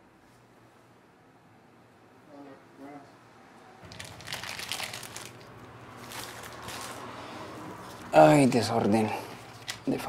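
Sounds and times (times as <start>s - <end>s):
paper and plastic rustling: 3.8s - 7.2s, 9.1s - 10.0s.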